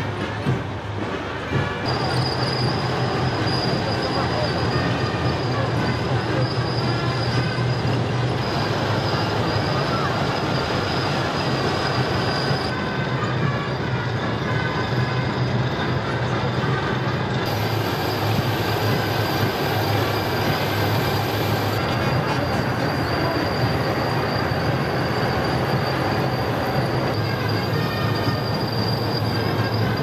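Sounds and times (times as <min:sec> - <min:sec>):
clatter of tank tracks: 0:00.0 - 0:30.0
thin high squeal: 0:01.9 - 0:30.0
low engine drone: 0:16.4 - 0:30.0.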